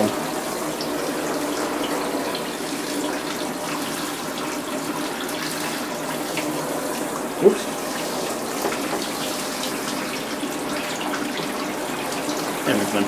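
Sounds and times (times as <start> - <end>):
shower spraying water: 0.0 - 13.0.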